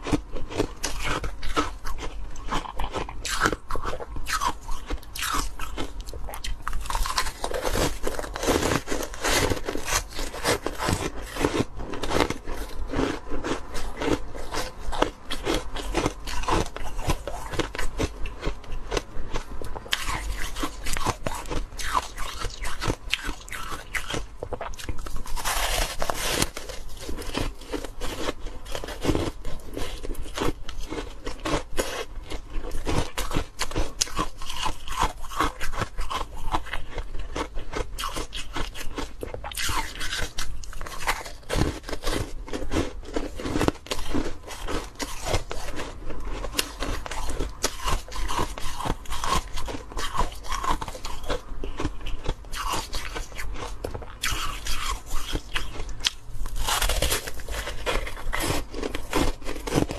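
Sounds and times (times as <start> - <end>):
ice crunching between teeth: 0.0 - 59.9.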